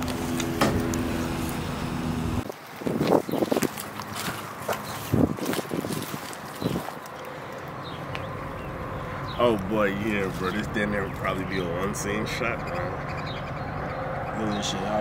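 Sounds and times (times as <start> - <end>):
drone propellers humming: 0.0 - 2.5.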